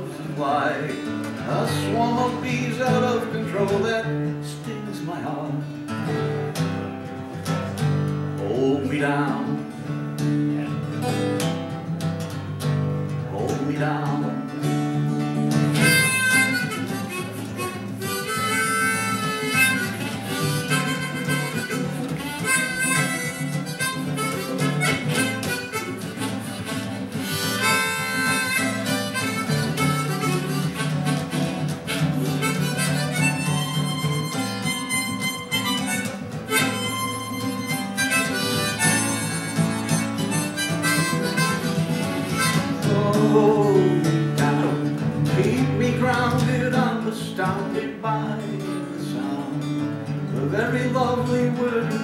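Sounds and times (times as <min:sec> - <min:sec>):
strummed acoustic guitar: 0:00.0 - 0:52.0
harmonica: 0:14.3 - 0:47.7.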